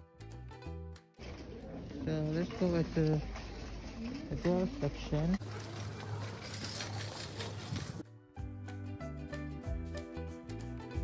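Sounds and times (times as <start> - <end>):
background music: 0.0 - 1.2, 8.0 - 11.0.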